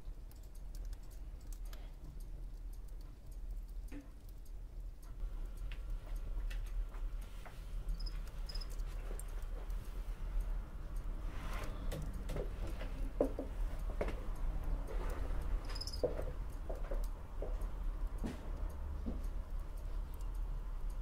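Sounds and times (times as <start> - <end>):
low room hum: 0.0 - 21.0
small clicks and ticks: 0.0 - 21.0.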